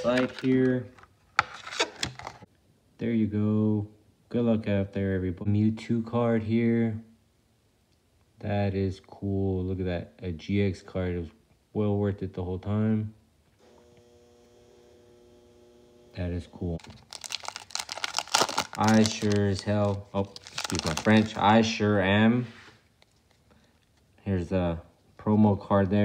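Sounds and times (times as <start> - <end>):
faint hum of held tones: 13.6 - 16.8
plastic crinkling and rubbing: 16.8 - 24.2.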